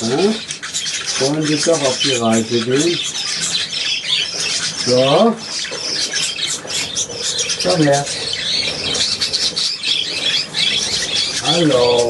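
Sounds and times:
budgerigars chattering and chirping: 0:00.0 - 0:12.0.

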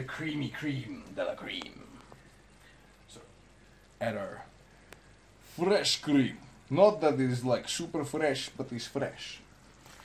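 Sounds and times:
mushrooms sizzling in a pan: 0:00.0 - 0:10.0.

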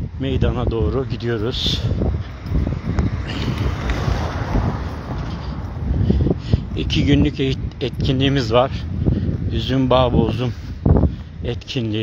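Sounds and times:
street noise: 0:00.0 - 0:12.0
wind buffeting microphone: 0:00.0 - 0:12.0.

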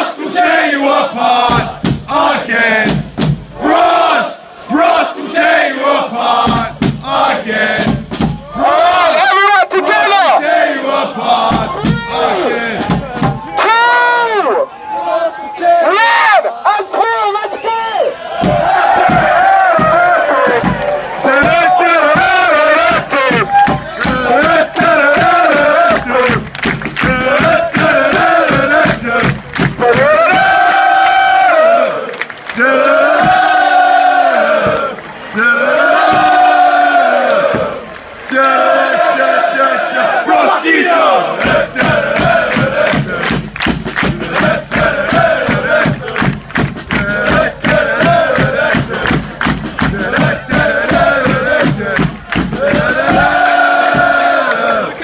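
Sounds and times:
crowd chanting and singing: 0:00.0 - 0:55.0.

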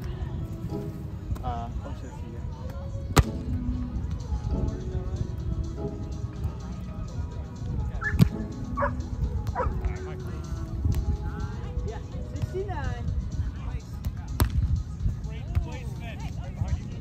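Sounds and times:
volleyball slaps: 0:03.1 - 0:03.5, 0:14.4 - 0:14.6.

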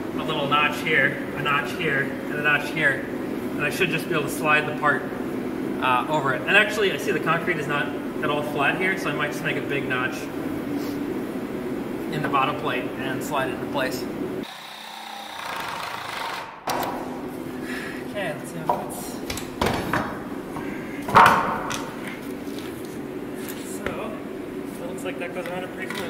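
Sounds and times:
steady low hum: 0:00.0 - 0:14.5, 0:16.6 - 0:26.0
wood knocking on concrete floor: 0:21.1 - 0:21.9.

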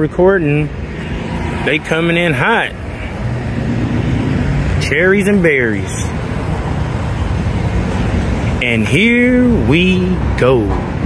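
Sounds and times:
car engine and tyres passing: 0:00.0 - 0:11.0
street traffic: 0:00.0 - 0:11.0.

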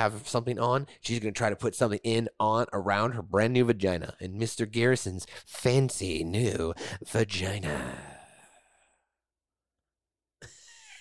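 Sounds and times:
man's breathy voice: 0:06.6 - 0:09.0.

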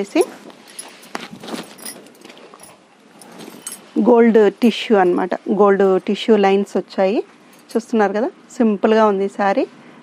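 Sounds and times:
cloth rustling: 0:00.0 - 0:04.1.

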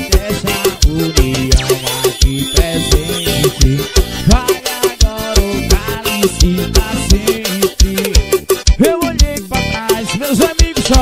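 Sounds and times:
synth keyboard melody: 0:00.0 - 0:11.0.

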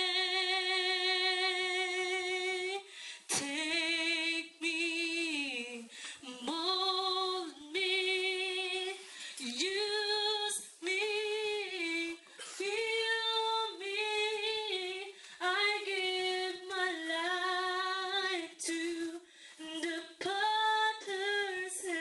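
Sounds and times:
woman singing unaccompanied: 0:00.0 - 0:22.0
breaths between phrases: 0:02.9 - 0:03.3, 0:19.2 - 0:19.6.

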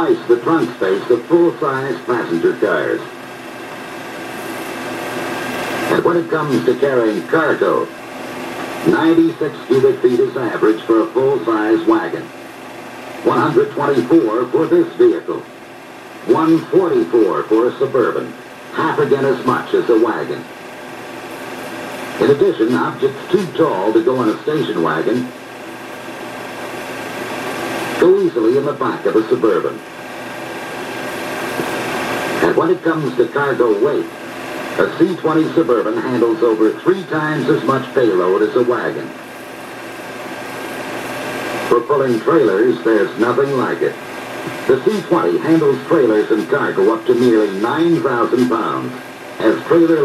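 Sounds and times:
faint steady hum: 0:00.0 - 0:50.0
film projector whirring: 0:00.0 - 0:50.0.

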